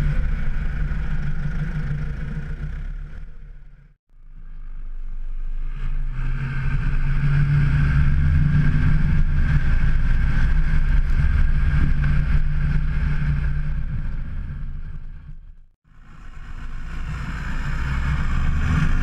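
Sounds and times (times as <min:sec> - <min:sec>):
tractor diesel engine under load: 0:00.0 - 0:03.9.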